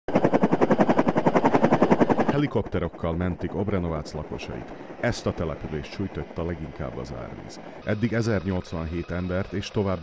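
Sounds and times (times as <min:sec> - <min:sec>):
helicopter rotor chopping: 0:00.1 - 0:10.0.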